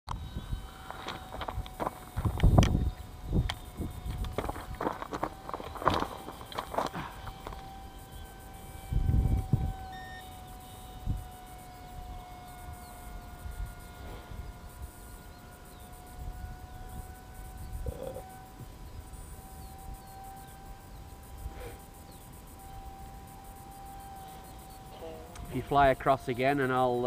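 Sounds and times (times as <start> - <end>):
faint high whine: 0.1 - 27.0.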